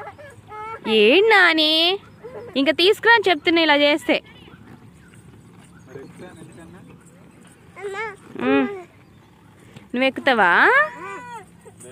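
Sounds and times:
young child calling: 0:00.0 - 0:01.3, 0:07.8 - 0:09.1, 0:10.7 - 0:11.8.

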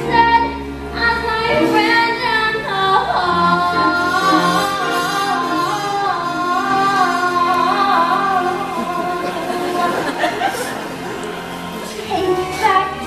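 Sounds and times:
women singing: 0:00.0 - 0:10.7
instrumental accompaniment: 0:00.0 - 0:13.0.

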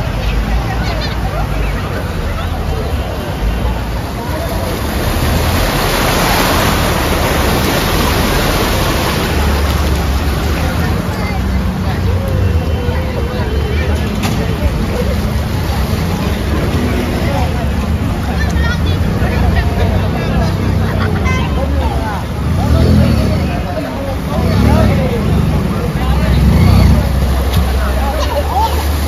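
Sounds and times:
motor scooter engines running: 0:00.0 - 0:29.0
people talking: 0:00.0 - 0:29.0.

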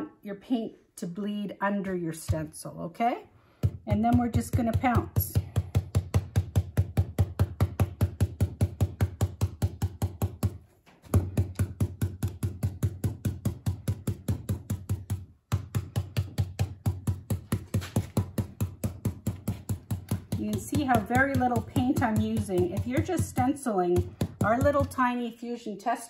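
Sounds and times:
stencil brush tapping on fabric: 0:03.6 - 0:25.1.

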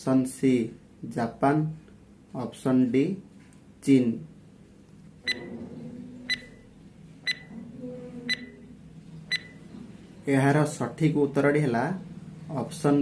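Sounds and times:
faint low background hum: 0:00.0 - 0:13.0
short high electronic beeps: 0:07.3 - 0:07.5, 0:09.3 - 0:09.6.

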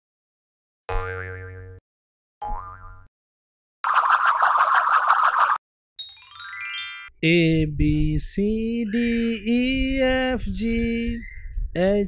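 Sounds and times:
wobbling pitched tones: 0:03.8 - 0:05.6.

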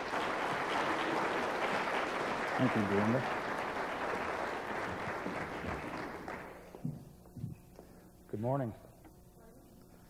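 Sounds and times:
audience applause: 0:00.0 - 0:06.7.

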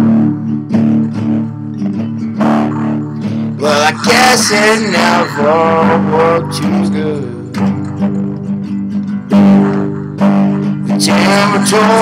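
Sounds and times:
acoustic guitar strumming: 0:00.0 - 0:12.0
person singing: 0:02.4 - 0:07.8, 0:10.9 - 0:12.0.

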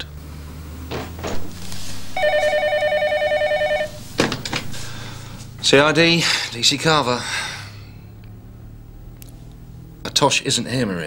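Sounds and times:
desk telephone ringing: 0:02.2 - 0:04.0.

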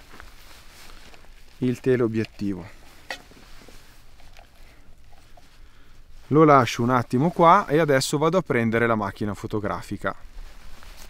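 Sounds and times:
faint handling noise: 0:00.0 - 0:08.1, 0:09.9 - 0:11.0.

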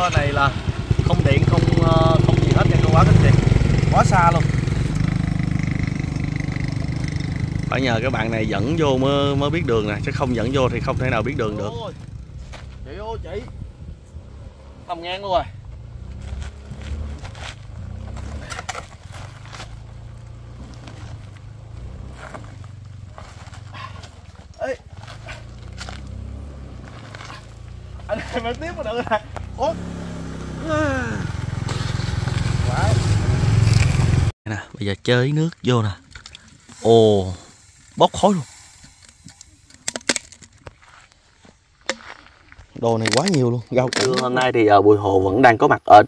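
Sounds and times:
motorcycle engine idling: 0:00.0 - 0:14.1, 0:17.6 - 0:26.3
hot exhaust crackling: 0:00.0 - 0:34.4, 0:35.8 - 0:40.8
person calling out loudly: 0:30.6 - 0:31.4.

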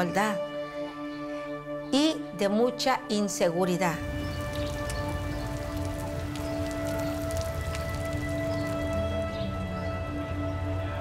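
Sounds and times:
fountain water splashing: 0:04.0 - 0:10.8
music with long held notes: 0:04.0 - 0:11.0.

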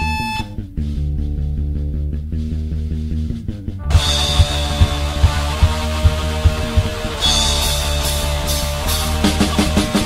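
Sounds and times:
bass guitar: 0:00.0 - 0:10.0
distorted electric guitar: 0:00.0 - 0:10.0.

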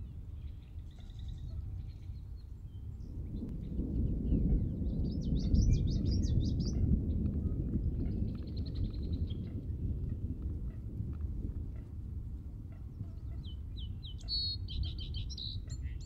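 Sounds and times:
birds chirping: 0:00.0 - 0:09.9, 0:12.7 - 0:16.0
low rumble of thunder: 0:00.0 - 0:16.0
rain: 0:03.1 - 0:12.6.

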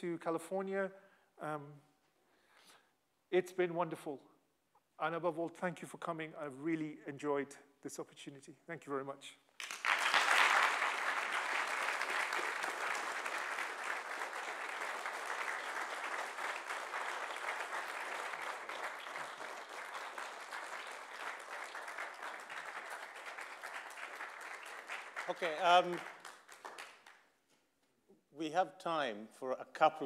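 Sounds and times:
audience applause: 0:09.6 - 0:27.2.

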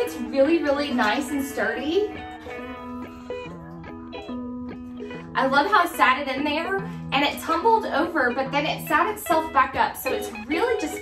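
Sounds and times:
plucked string music: 0:00.0 - 0:11.0.

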